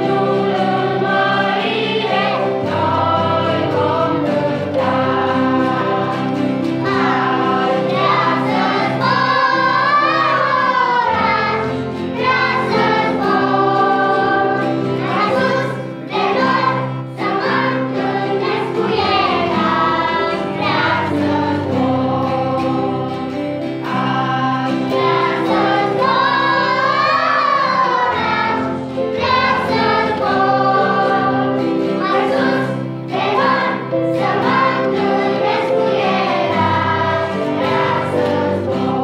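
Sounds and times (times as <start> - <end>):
children's choir singing: 0.0 - 39.0
guitar chords: 0.0 - 39.0
piano chords: 0.0 - 39.0.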